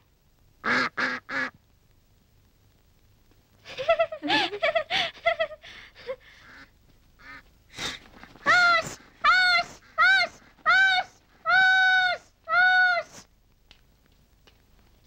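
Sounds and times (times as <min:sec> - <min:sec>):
duck calling loudly: 0:00.6 - 0:01.6, 0:06.4 - 0:07.5.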